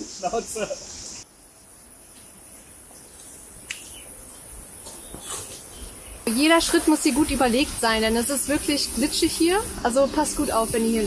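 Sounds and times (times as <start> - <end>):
insects chirping chorus: 0.0 - 11.0.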